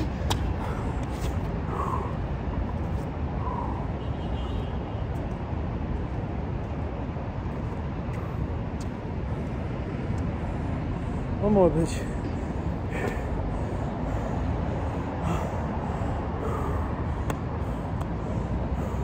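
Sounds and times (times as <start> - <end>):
low rumbling background noise: 0.0 - 19.0.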